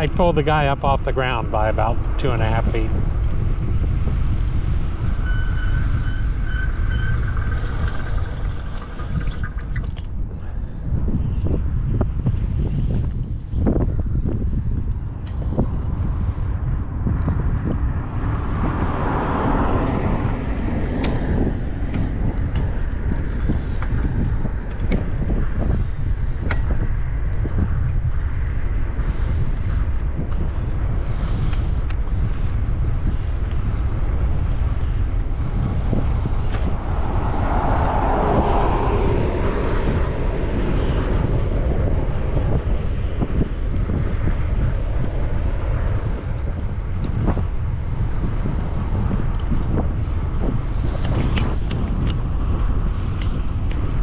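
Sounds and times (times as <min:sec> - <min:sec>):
wind buffeting microphone: 0:00.0 - 0:54.0
higher whooshing sound: 0:35.6 - 0:42.2.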